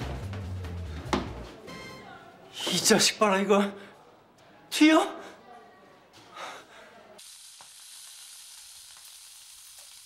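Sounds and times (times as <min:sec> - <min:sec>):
meat sizzling on grill pan: 0:07.2 - 0:10.0.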